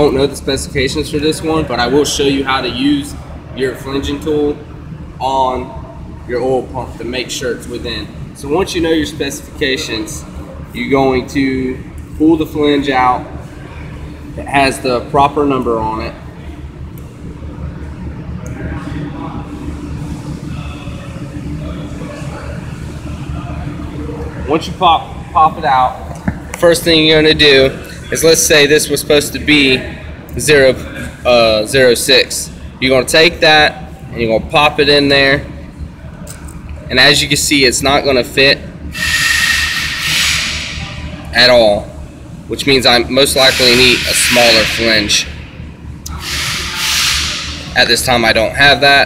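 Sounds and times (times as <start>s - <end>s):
workshop machinery rumble and hum: 0.0s - 49.0s
loud air hiss: 38.9s - 41.0s, 43.4s - 45.2s, 46.1s - 47.8s
thin steady whistle: 38.9s - 41.0s.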